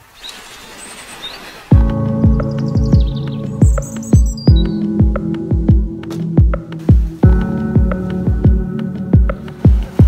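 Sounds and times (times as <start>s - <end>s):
outdoor hiss: 0.0s - 1.7s
bird chirps: 0.1s - 5.1s
music with deep beat: 1.7s - 10.0s.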